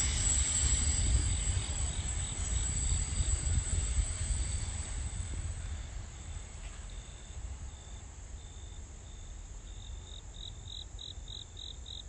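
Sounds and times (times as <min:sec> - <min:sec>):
continuous high trill: 0:00.0 - 0:09.9
insects chirping: 0:00.0 - 0:12.0.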